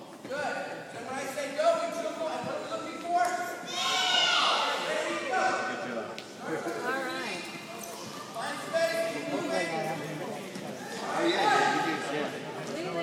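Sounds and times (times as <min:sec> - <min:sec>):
children shouting and chattering: 0:03.4 - 0:09.7
loud shrill shout: 0:03.7 - 0:05.2.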